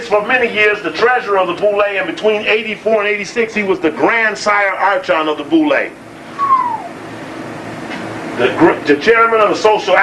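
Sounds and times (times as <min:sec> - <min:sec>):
faint room hum: 0:00.0 - 0:10.0
short high squeak: 0:06.4 - 0:06.9.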